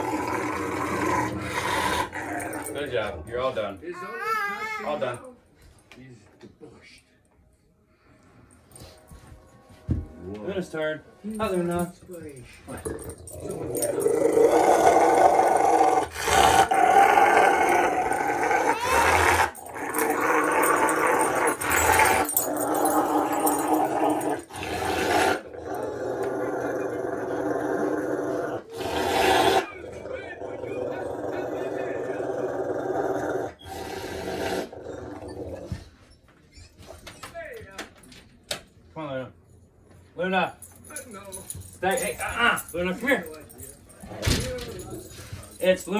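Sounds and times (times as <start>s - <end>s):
dog growling: 0.0s - 3.7s, 12.7s - 35.9s.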